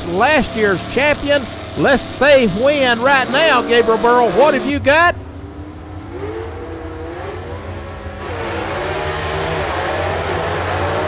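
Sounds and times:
drag car engines accelerating: 0:00.0 - 0:11.0.

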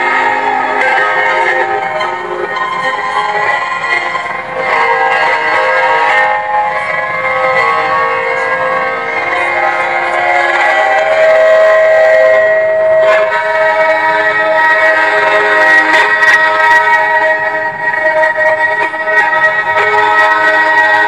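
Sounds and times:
low drone tone: 0:00.0 - 0:18.2
sustained drone tones: 0:00.0 - 0:21.0.

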